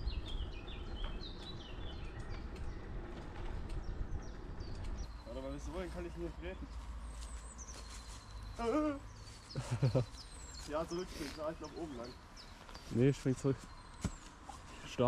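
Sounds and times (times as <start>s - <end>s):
wind on microphone: 0.0s - 5.1s
bicycle road rumble: 0.0s - 15.0s
small birds chirping: 0.0s - 15.0s.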